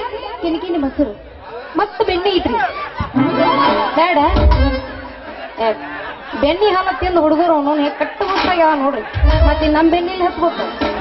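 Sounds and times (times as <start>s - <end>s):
woman speaking through microphone: 0.0s - 2.7s, 3.6s - 4.8s, 5.6s - 10.8s.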